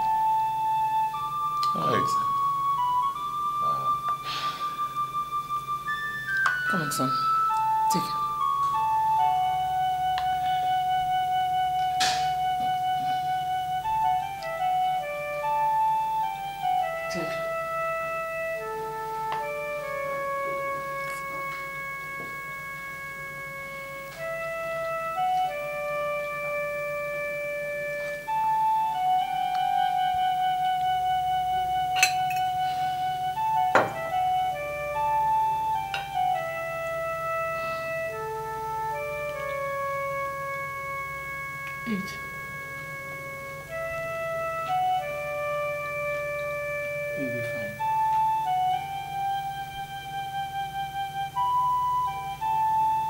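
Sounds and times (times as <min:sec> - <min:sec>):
organ-like keyboard melody: 0:00.0 - 0:53.0.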